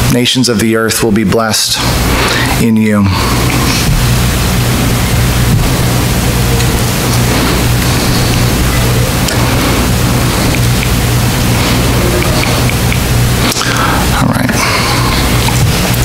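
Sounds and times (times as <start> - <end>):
low electrical hum: 0.0 - 16.0
steady loud hiss: 0.0 - 16.0.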